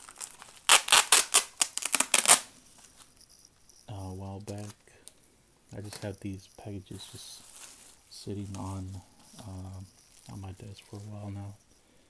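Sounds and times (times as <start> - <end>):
bubble wrap crackling: 0.0 - 11.7
rustling: 0.0 - 12.0.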